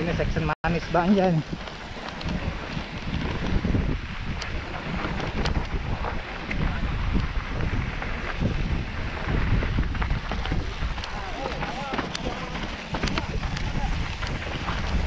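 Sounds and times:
bike tyres and frame rumbling: 0.0 - 15.0
wind buffeting microphone: 0.0 - 15.0
bike clicks and rattles: 0.8 - 15.0.

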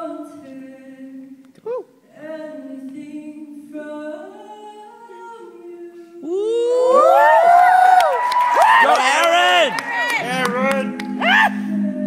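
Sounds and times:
audience screaming and whooping: 6.4 - 11.8
vocal group singing chord: 9.3 - 12.0.

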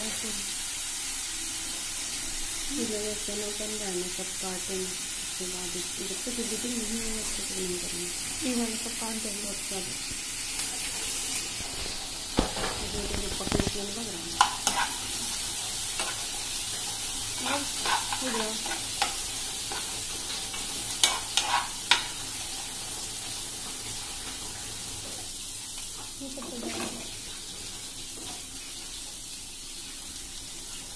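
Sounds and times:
chickpeas sizzling in a pan: 0.0 - 30.9
spoon scraping and knocking pan: 10.6 - 22.2.

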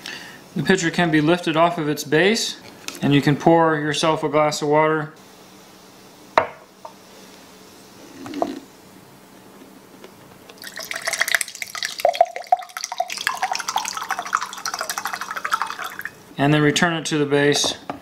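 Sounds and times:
water pouring into a glass: 10.6 - 16.3.

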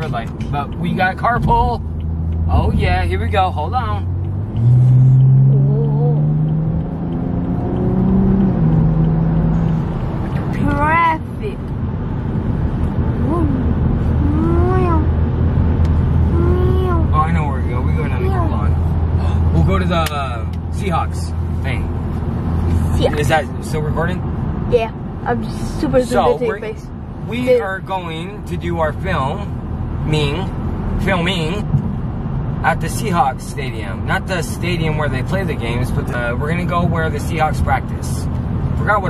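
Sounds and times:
car engine accelerating hard: 0.0 - 39.0
voice exclamations: 13.2 - 15.2, 16.3 - 17.2.

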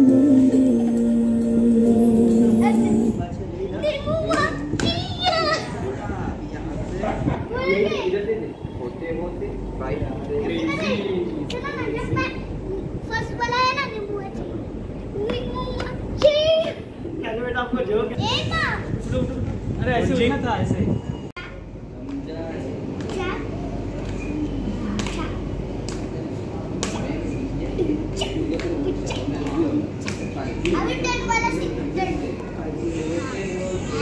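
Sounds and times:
children talking and laughing: 2.6 - 19.7, 21.4 - 34.0.

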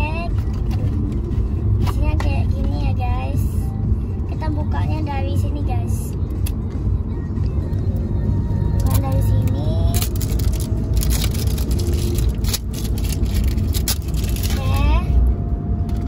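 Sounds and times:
child's voice: 0.0 - 0.4, 1.8 - 6.1, 8.8 - 10.2, 14.5 - 15.2
car cabin engine rumble: 0.0 - 16.0
cardboard box crinkling: 10.0 - 14.6.

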